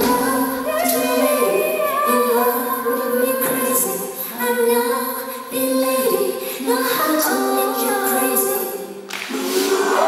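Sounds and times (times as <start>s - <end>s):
pop concert music: 0.0s - 10.0s.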